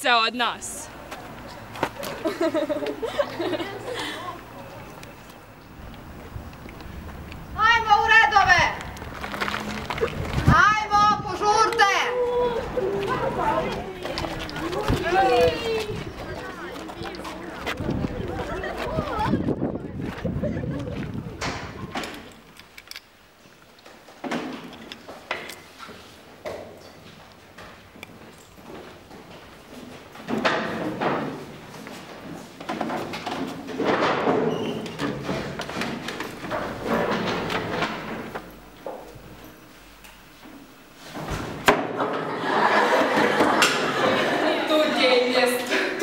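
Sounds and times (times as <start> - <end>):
children's footsteps: 0.9 - 22.6, 23.5 - 41.6
girls laughing: 1.0 - 4.8, 12.1 - 16.0, 18.2 - 21.4, 42.0 - 46.0
desks and chairs knocking: 32.7 - 39.1.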